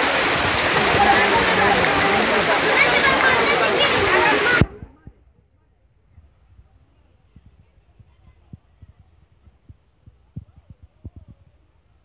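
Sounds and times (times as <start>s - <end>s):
floodwater rushing: 0.0s - 5.1s
crowd of voices talking: 0.0s - 11.9s.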